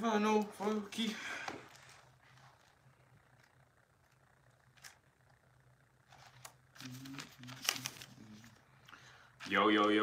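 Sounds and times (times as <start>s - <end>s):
crinkling handling noise: 1.6s - 5.4s, 6.0s - 10.0s.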